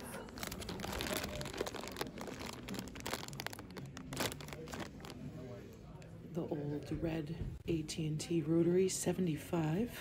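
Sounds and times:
plastic bags crinkling: 0.0s - 5.3s.

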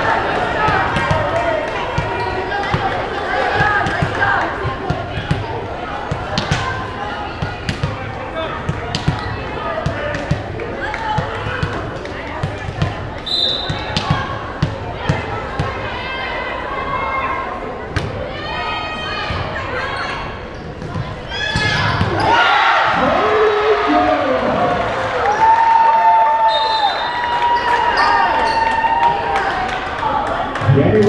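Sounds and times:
crowd chatter in gym: 0.0s - 31.0s
volleyball bouncing on gym floor: 0.6s - 15.9s.

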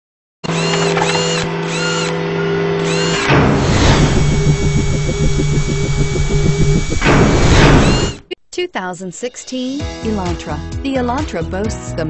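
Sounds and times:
machine-like drill whirring: 0.4s - 8.2s
fast ratcheting pulse: 2.8s - 8.2s
repeating high arched tones: 2.9s - 8.3s.

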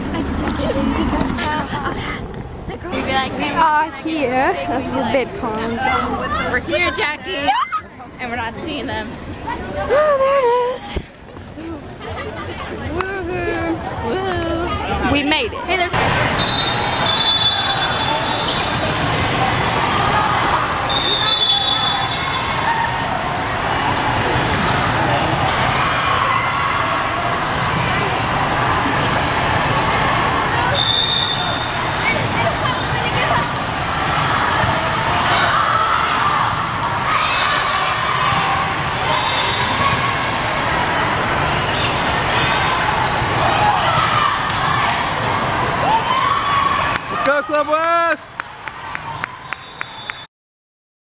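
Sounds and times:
many voices talking: 0.0s - 48.4s.

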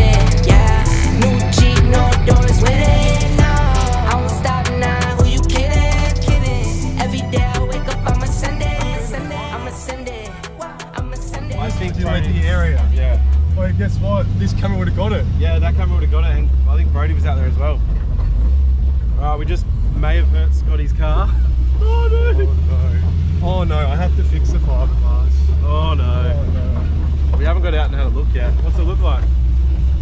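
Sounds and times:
people talking: 0.0s - 17.9s, 19.2s - 29.3s
car engine drone: 0.0s - 30.0s.

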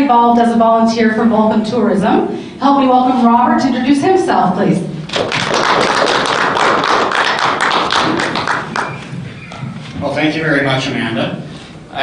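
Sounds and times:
audience applauding: 5.1s - 9.1s.

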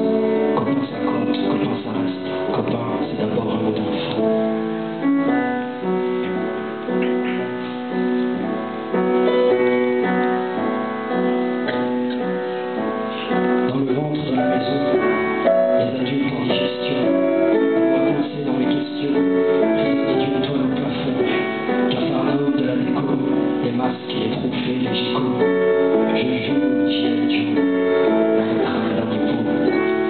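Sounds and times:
grand piano chords and melody: 0.0s - 30.0s.

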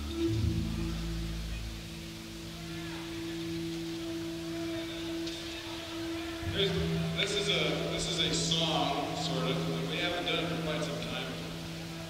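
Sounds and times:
live band sustained chord: 0.0s - 12.0s.

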